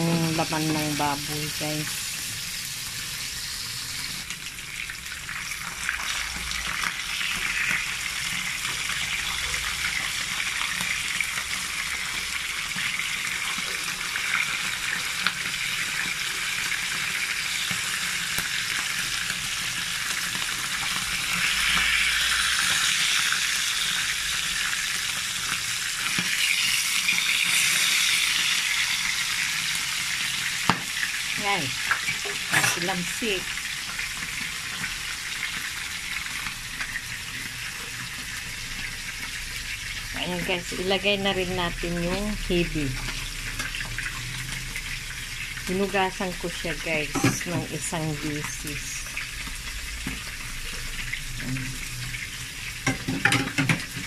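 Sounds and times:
fish frying in hot oil: 0.0 - 54.0.

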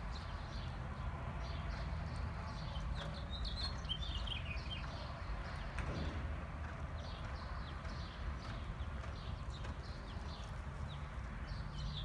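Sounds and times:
horse hoofbeats on soft dirt: 0.2 - 12.0.

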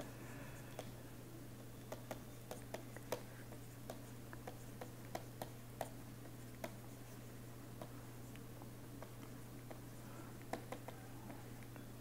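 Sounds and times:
steady low hum: 0.0 - 12.0
stylus clicking on tablet: 1.6 - 7.1, 7.8 - 11.9.

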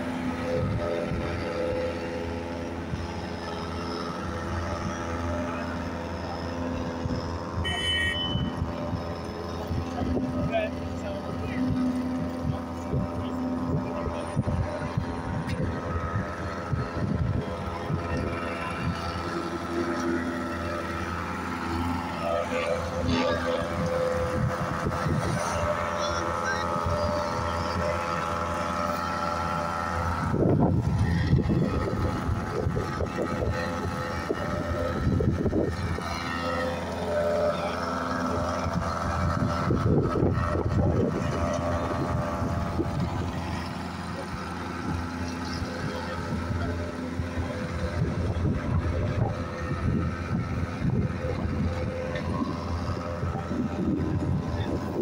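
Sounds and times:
construction machinery engine drone: 0.0 - 55.0
people's voices: 4.6 - 55.0.

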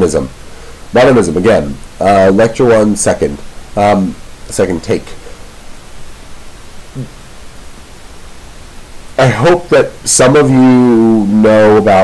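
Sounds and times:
microphone hiss: 0.0 - 12.0
person humming mm: 7.0 - 7.2.

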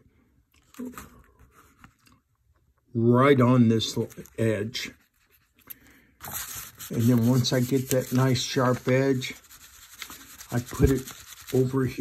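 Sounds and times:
knife blade scratching paper: 6.2 - 12.0.

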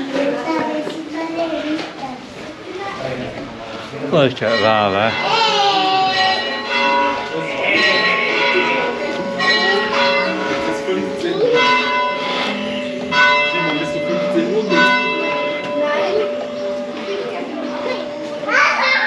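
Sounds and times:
church bells ringing: 3.8 - 19.0.

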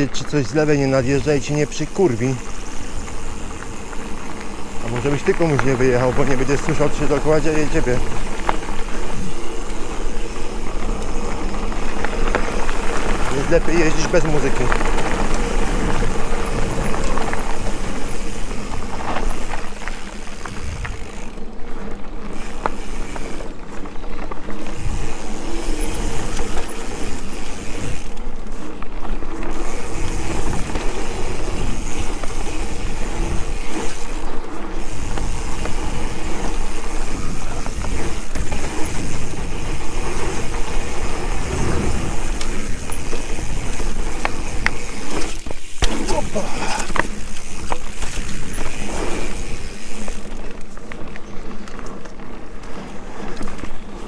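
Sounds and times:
bike tyres rumbling on dirt: 0.0 - 54.0.

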